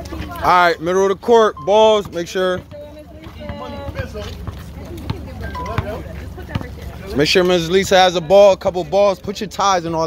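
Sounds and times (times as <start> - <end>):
children and adults talking: 0.0 - 10.0.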